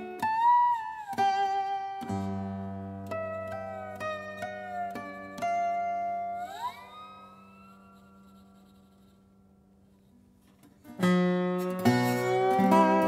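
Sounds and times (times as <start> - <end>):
slide guitar chords: 0.0 - 8.4, 10.8 - 13.0.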